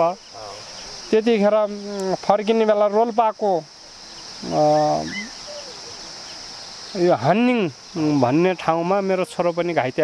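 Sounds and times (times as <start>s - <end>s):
insect chirring: 0.0s - 10.0s.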